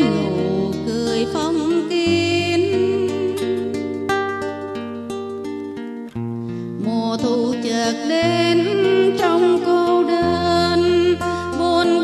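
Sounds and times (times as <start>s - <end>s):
woman singing: 0.0s - 4.6s, 6.6s - 12.0s
acoustic guitar plucked notes: 0.0s - 12.0s.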